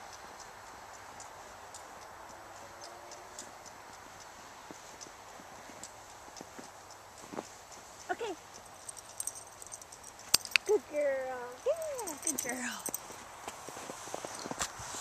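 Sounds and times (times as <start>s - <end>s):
steady outdoor hiss: 0.0s - 15.0s
footsteps crunching in snow: 6.4s - 8.0s, 12.6s - 15.0s.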